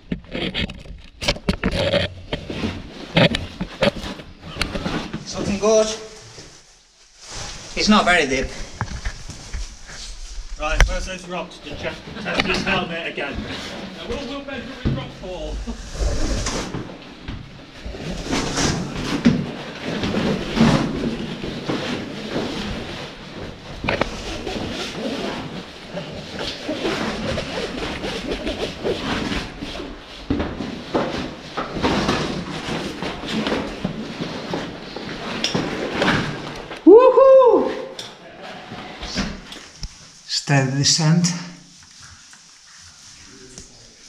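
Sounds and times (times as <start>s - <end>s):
clothing rustling: 0.4s - 36.8s, 41.0s - 44.0s.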